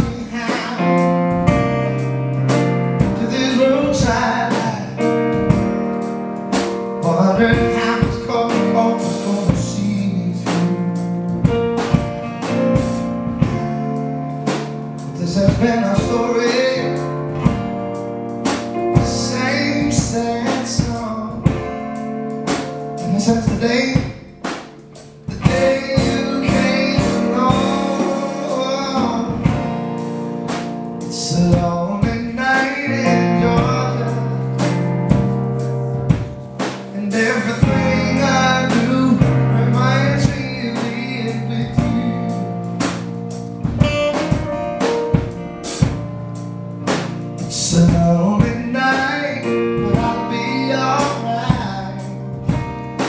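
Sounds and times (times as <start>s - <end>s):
man singing: 0.0s - 5.8s, 7.0s - 12.7s, 15.0s - 17.8s, 18.8s - 21.9s, 23.0s - 24.5s, 25.2s - 30.0s, 31.0s - 42.8s, 47.4s - 52.6s.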